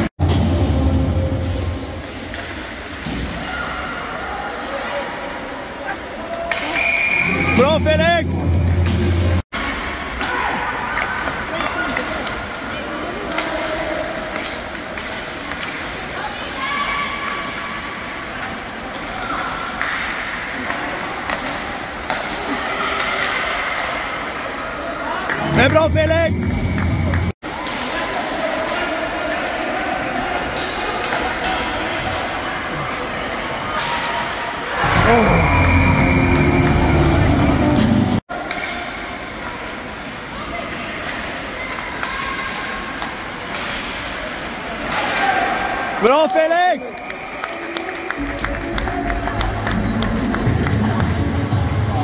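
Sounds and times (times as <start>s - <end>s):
voices and shouts: 3.4s - 8.4s, 44.8s - 48.2s
music playing in hall: 35.4s - 38.2s.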